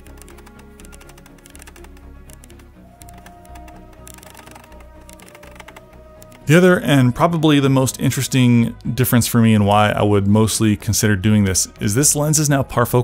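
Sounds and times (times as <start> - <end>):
background music: 0.0 - 13.0.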